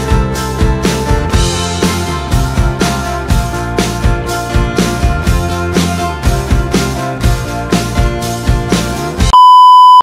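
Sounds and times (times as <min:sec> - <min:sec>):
background music with a beat: 0:00.0 - 0:09.4
high-pitched test tone beep: 0:09.3 - 0:10.0.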